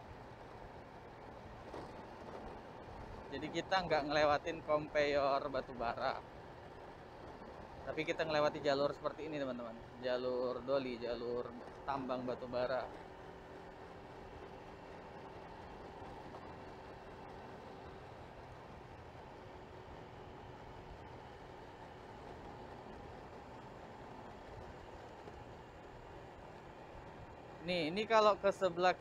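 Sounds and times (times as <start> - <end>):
scooter engine running: 0.0 - 29.0
wind and road noise: 0.0 - 29.0.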